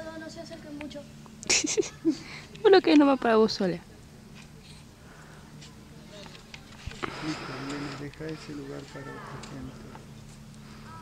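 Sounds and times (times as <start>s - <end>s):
indistinct voices talking quietly: 0.0s - 11.0s.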